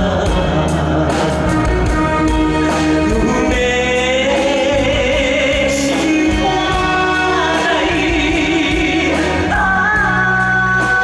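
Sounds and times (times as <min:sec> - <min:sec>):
man singing into a microphone: 0:00.0 - 0:01.7, 0:03.0 - 0:11.0
live band playing: 0:00.0 - 0:11.0.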